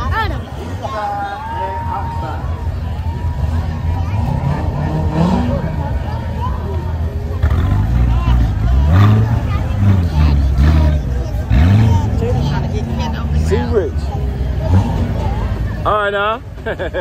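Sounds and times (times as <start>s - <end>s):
car engines passing: 0.0s - 17.0s
crowd chatter: 0.0s - 17.0s.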